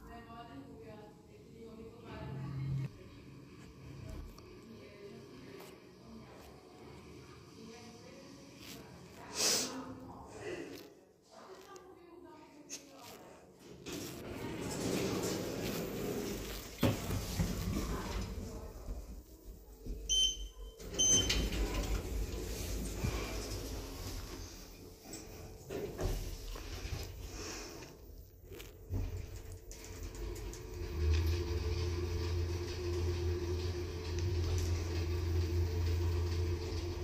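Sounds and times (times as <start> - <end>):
lift doors sliding open: 13.9 - 18.5, 20.8 - 27.0, 28.9 - 37.0
short electronic beeps: 20.1 - 21.3.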